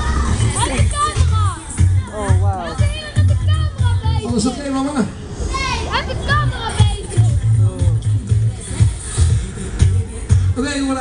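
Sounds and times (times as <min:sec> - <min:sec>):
young voices calling out: 0:00.0 - 0:04.7
dance music: 0:00.0 - 0:04.8, 0:05.5 - 0:11.0.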